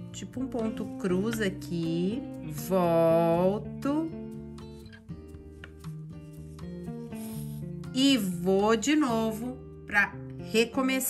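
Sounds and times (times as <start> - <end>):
soft guitar music: 0.0 - 11.0.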